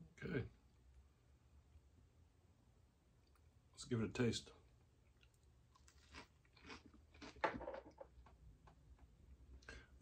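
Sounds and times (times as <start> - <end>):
man biting and chewing: 5.0 - 7.6.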